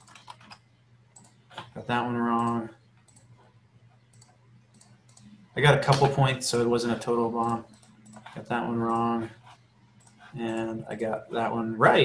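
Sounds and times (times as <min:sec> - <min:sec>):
faint computer mouse clicks: 0:01.2 - 0:01.7, 0:02.4 - 0:03.3, 0:04.0 - 0:06.1.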